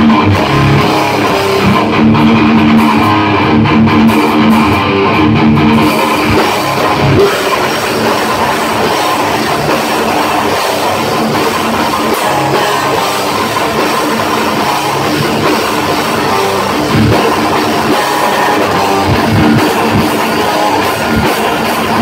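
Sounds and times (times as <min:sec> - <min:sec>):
distorted electric guitar: 0:00.0 - 0:22.0
pounding drum kit: 0:00.0 - 0:22.0.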